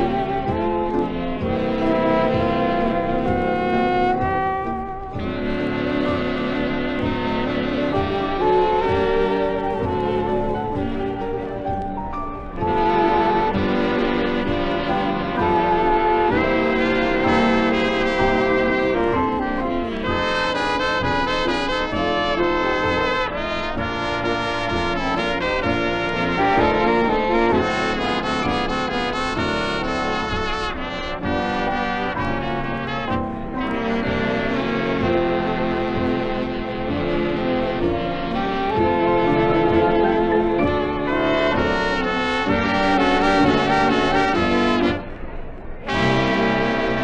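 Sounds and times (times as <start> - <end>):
big band playing: 0.0 - 47.0
trumpets and trombones: 0.0 - 47.0.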